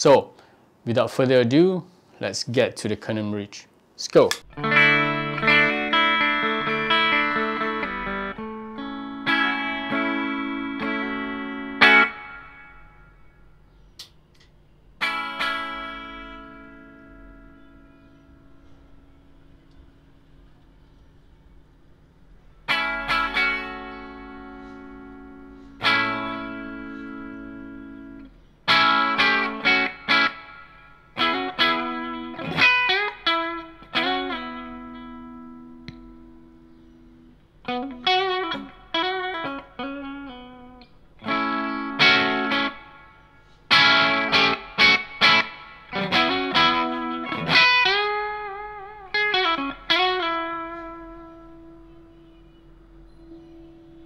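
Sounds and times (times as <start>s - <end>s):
overdriven electric guitar: 4.4s - 13.3s, 15.0s - 19.9s, 22.6s - 54.0s.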